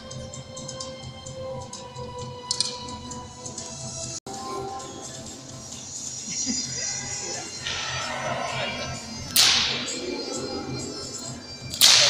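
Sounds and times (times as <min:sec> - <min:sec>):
sharp loud crack: 0:07.7 - 0:12.0.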